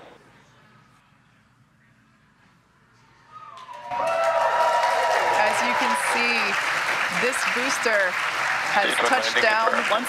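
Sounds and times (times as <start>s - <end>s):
crowd cheering and applauding: 3.5s - 10.0s.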